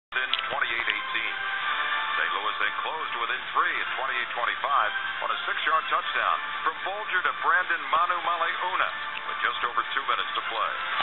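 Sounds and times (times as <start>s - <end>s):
television music: 0.1s - 11.0s
voice over music: 0.1s - 11.0s.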